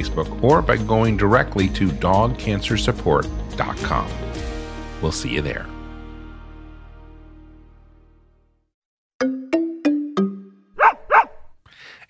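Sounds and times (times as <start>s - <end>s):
dog barking: 10.8s - 11.6s.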